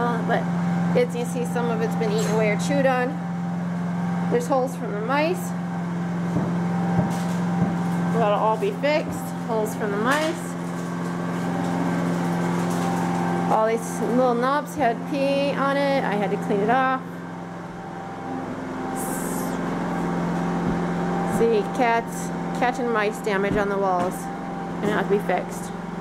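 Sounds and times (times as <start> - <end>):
generator engine humming: 0.0 - 26.0
soft thumps: 6.3 - 7.9.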